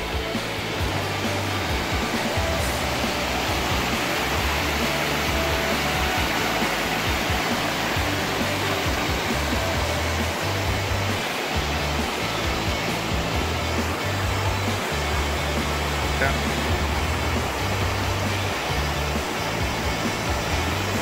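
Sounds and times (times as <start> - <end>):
low bass notes of music: 0.0 - 21.0
stream rushing over boulders: 0.0 - 21.0.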